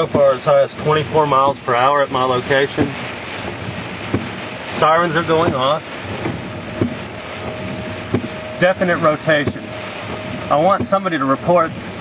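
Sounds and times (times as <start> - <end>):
rain falling on a car: 0.0 - 12.0
distant warning siren: 3.2 - 12.0.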